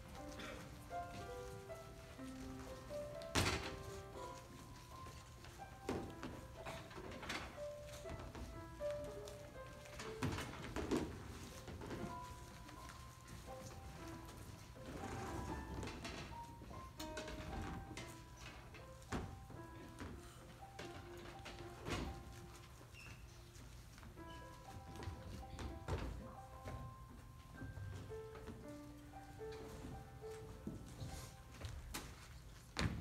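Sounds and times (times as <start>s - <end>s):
piano playing soft notes: 0.0s - 33.0s
chair thunk on wooden floor: 3.2s - 4.0s.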